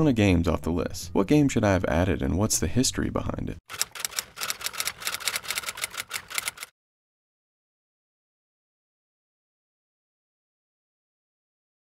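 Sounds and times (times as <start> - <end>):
typewriter keystrokes: 3.7 - 6.7.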